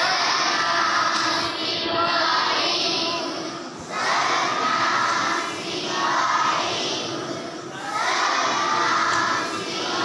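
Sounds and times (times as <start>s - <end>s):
children's voices in unison: 0.0s - 10.0s.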